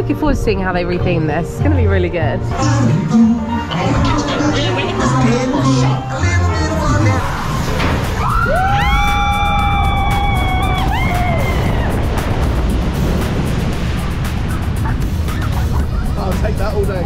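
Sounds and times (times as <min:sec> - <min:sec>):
people screaming: 0:06.6 - 0:12.1
rushing water: 0:06.6 - 0:17.0.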